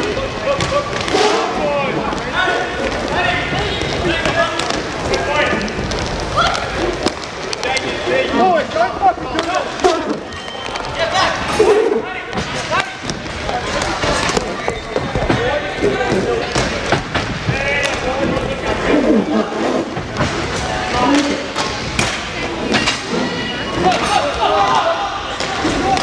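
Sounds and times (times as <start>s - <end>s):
hockey sticks and puck clacking: 0.0s - 18.9s, 19.5s - 26.0s.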